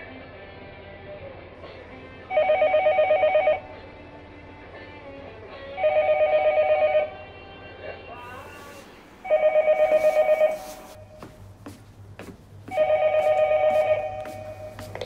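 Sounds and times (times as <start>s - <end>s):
telephone ringing: 2.3s - 3.6s, 5.8s - 7.2s, 9.2s - 10.8s, 12.7s - 14.8s.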